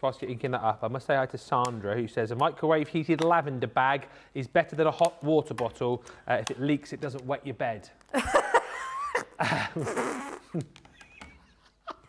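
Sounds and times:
burst of laughter: 8.2 - 10.0.

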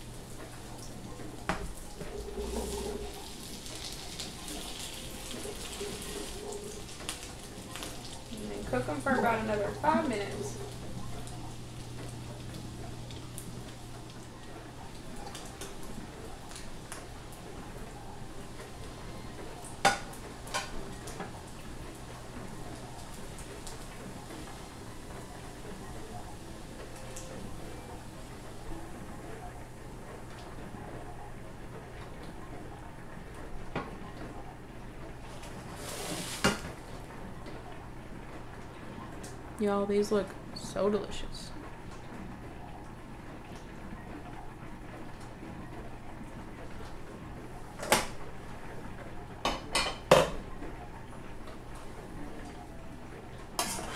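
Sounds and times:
constant hum: 0.0 - 35.8
patties sizzling in a pan: 1.4 - 17.5.

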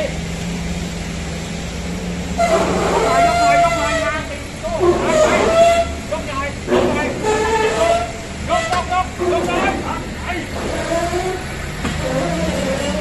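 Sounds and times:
forklift engine running: 0.0 - 13.0
men calling out: 2.4 - 13.0.

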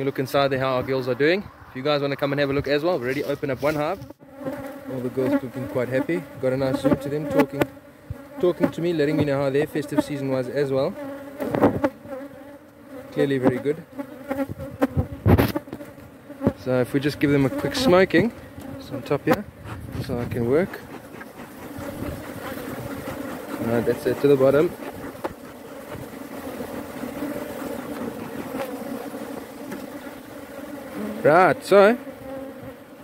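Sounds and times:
bees buzzing: 3.2 - 33.0.

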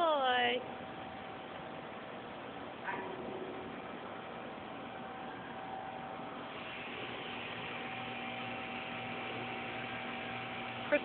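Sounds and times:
faint hum: 0.0 - 11.0.

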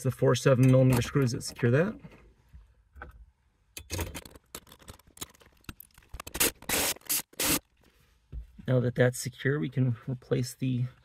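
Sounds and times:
power driver driving screws: 6.2 - 7.6.

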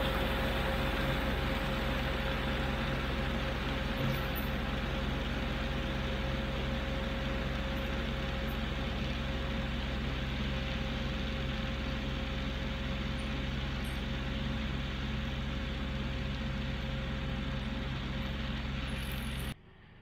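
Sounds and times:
tractor diesel engine under load: 0.0 - 19.6
constant whine: 0.0 - 20.0.

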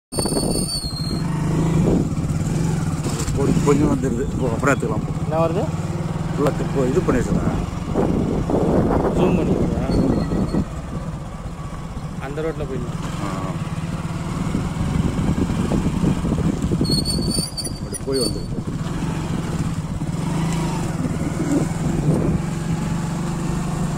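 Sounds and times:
road noise: 0.1 - 23.9
vehicle engine running: 0.4 - 23.9
voices: 3.1 - 8.1, 8.8 - 11.1
short high-pitched tones: 9.8 - 10.8.

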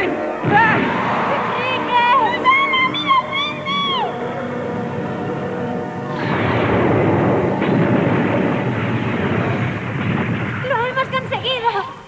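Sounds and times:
wavering high cries: 0.9 - 6.6
loud rumbling sound effect: 6.1 - 11.0.

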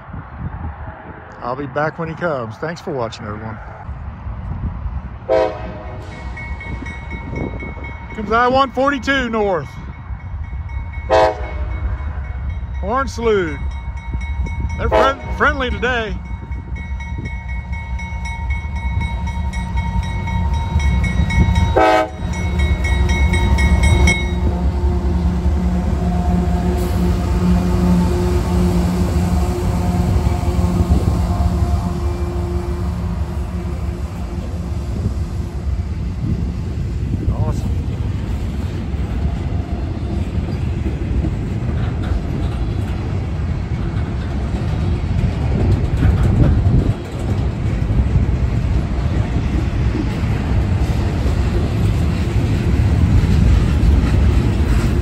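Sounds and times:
diesel locomotive engines droning: 0.0 - 55.0
train wheel noise: 4.0 - 55.0
locomotive horn: 5.3 - 6.1, 11.1 - 11.9, 14.8 - 15.8, 20.0 - 35.8.

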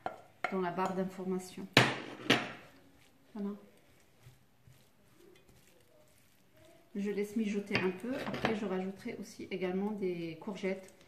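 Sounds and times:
wooden spoon stirring in frying pan: 0.0 - 11.0.

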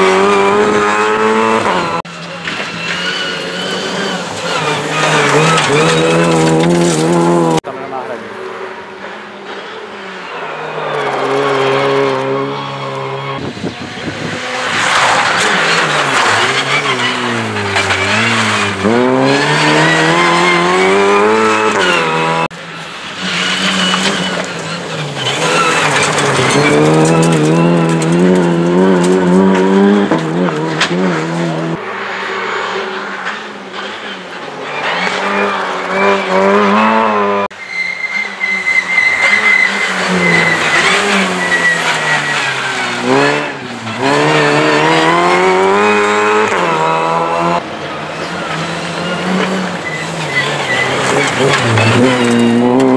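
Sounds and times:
rally car engines accelerating: 0.0 - 52.9.

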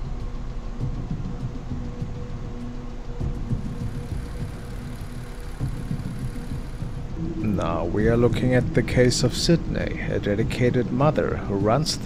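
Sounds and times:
low rumbling drone: 0.0 - 11.8.

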